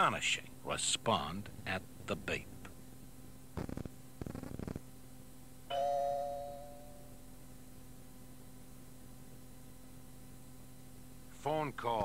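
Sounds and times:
bell-like chime ding: 5.7 - 7.2.

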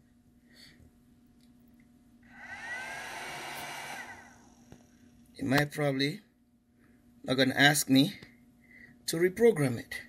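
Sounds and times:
cooling fan whirring: 0.0 - 10.0.

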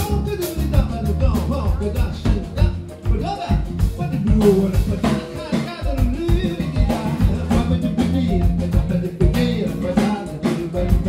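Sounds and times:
live band playing: 0.0 - 11.0
man singing into microphone: 0.0 - 11.0.

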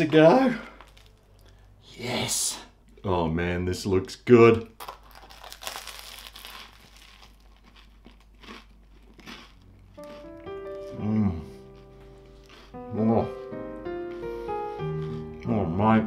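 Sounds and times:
crunchy bite into bread: 4.8 - 12.8
chewing: 5.1 - 12.8, 14.1 - 15.5
light background music: 10.0 - 16.0
person saying mmm: 10.8 - 11.7.

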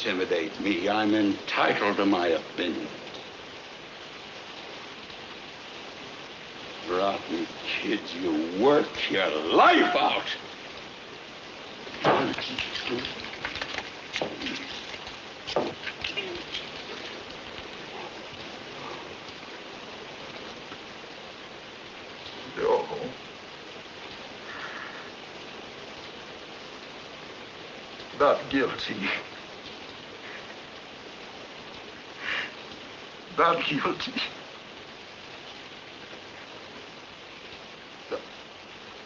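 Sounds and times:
steady hiss: 0.0 - 39.0.

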